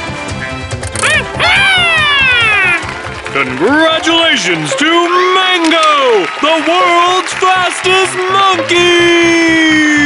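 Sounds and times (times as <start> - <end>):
background music: 0.0 - 10.0
cartoon monkey cry: 1.0 - 2.8.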